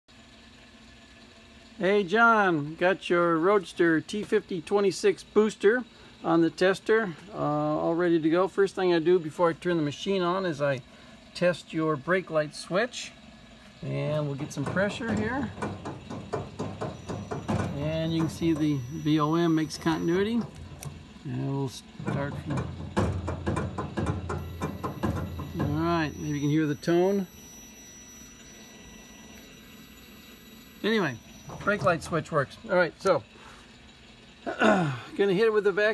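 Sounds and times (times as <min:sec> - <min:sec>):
faint background hum: 0:00.4 - 0:35.9
man speaking: 0:13.8 - 0:15.6, 0:17.7 - 0:20.5, 0:21.2 - 0:22.6, 0:25.6 - 0:27.3, 0:30.8 - 0:33.3
multimeter continuity beep: 0:14.4 - 0:21.0, 0:24.3 - 0:32.5.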